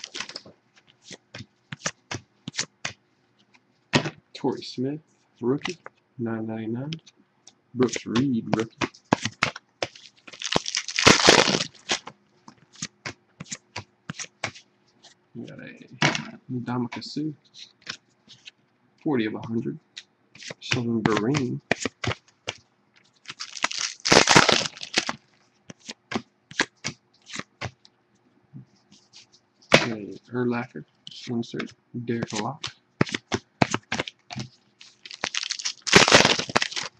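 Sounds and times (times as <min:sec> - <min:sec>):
foil wrapper tearing: 0:00.0 - 0:00.4, 0:08.6 - 0:12.1, 0:23.2 - 0:25.2, 0:33.1 - 0:36.9
wrapper and cards crinkling: 0:00.0 - 0:02.7, 0:07.8 - 0:12.1, 0:20.4 - 0:26.0, 0:32.2 - 0:36.9
cards clicking: 0:20.0 - 0:22.6.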